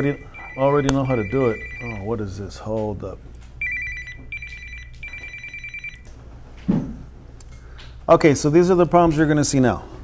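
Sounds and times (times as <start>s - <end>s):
telephone ringer trilling: 0.0s - 2.2s, 3.6s - 6.1s.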